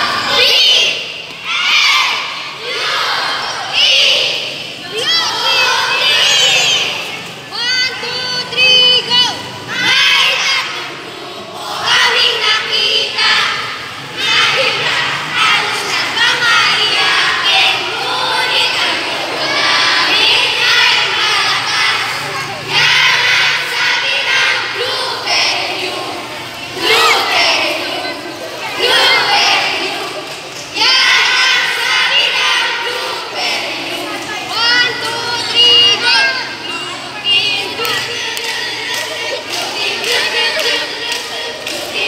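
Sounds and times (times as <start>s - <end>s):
children shouting a cheer: 0.0s - 42.0s
crowd noise: 0.0s - 42.0s.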